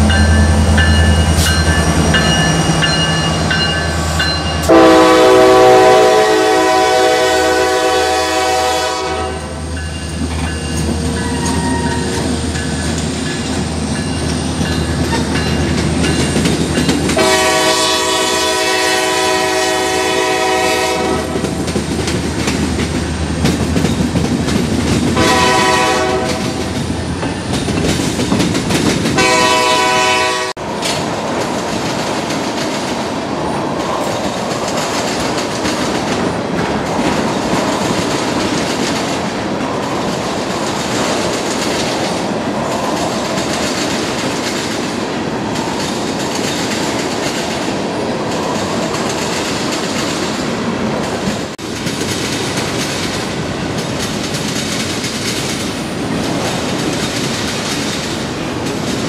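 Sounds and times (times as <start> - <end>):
freight train rumbling past: 0.0 - 59.0
train wheels clickety-clack: 0.0 - 59.0
train horn blasts: 4.6 - 9.7, 17.2 - 21.5, 25.2 - 26.7, 29.2 - 30.6.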